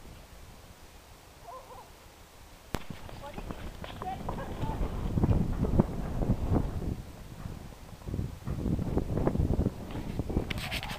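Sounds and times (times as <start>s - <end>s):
hooves thudding on turf: 2.8s - 10.9s.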